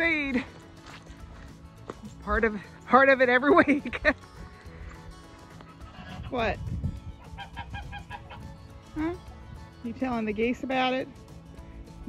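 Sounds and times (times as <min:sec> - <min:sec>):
poultry calling: 0:07.2 - 0:08.6.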